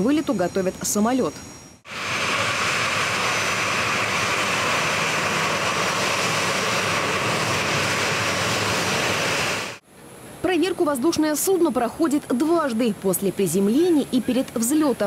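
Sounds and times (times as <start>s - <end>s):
jet engines running: 1.4s - 11.9s.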